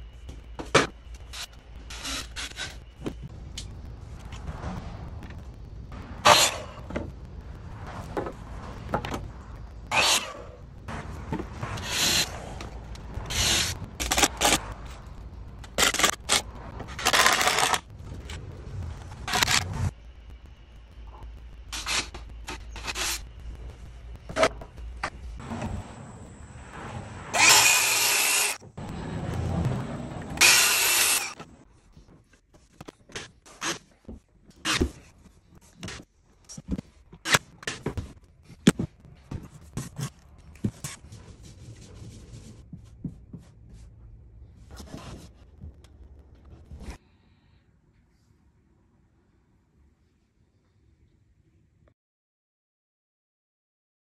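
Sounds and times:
cordless drill driving into wood: 27.4 - 28.6, 30.4 - 31.3.

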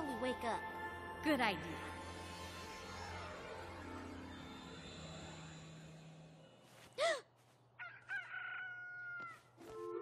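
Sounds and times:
rooster crowing: 7.8 - 9.5.

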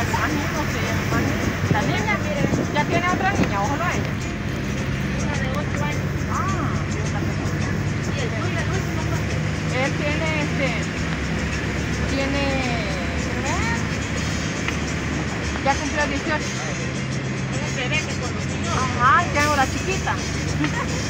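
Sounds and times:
car engine and road noise: 0.0 - 21.0.

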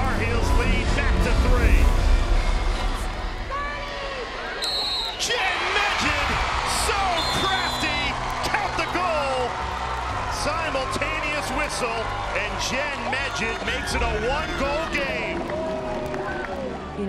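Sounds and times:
crowd: 0.0 - 17.0
players shouting: 3.5 - 16.9.

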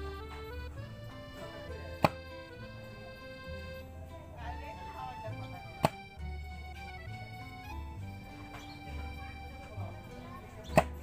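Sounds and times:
background music with steady beat: 0.0 - 11.0
bamboo pole ramming earth: 2.0 - 2.2, 5.8 - 6.0, 10.6 - 11.0.

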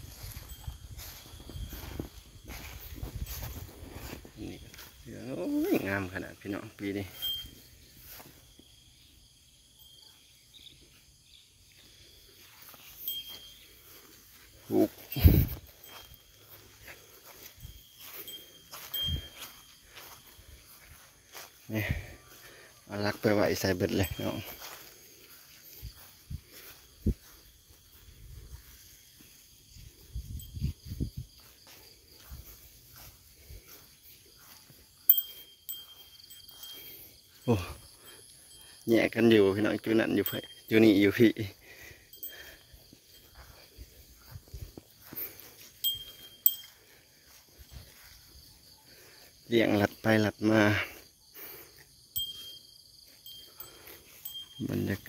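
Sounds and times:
high ringing chime tones: 0.0 - 27.4, 28.5 - 48.3, 52.1 - 55.0.

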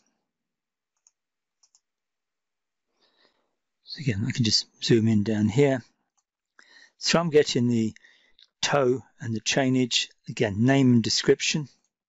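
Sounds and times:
faint computer mouse clicks: 1.0 - 1.9.

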